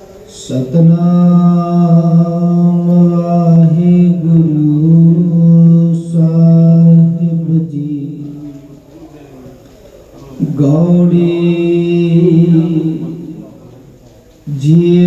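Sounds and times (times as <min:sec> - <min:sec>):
man chanting: 0:00.2 - 0:09.0, 0:10.3 - 0:15.0.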